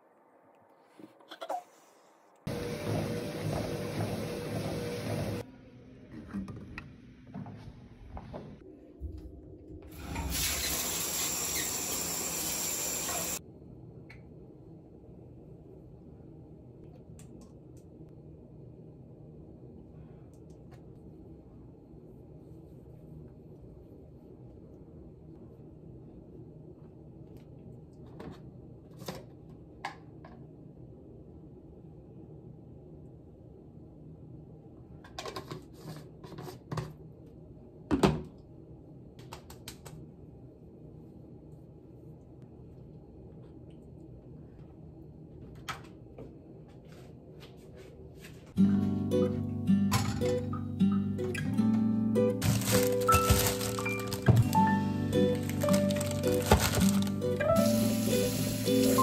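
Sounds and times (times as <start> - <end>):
treadmill running: 2.5 - 5.4
running water: 55.4 - 59.0.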